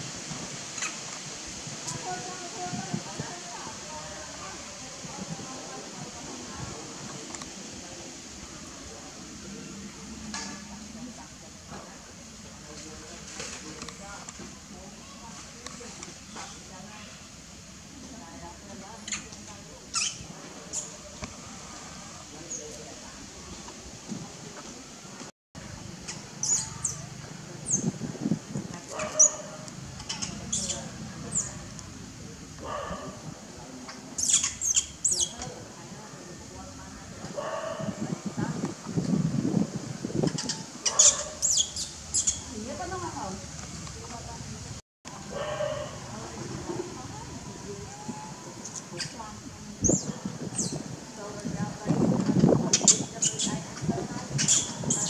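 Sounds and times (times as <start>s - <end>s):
faint indistinct voices: 0.0s - 55.0s
baby monkey squealing: 19.9s - 20.9s, 40.3s - 42.5s.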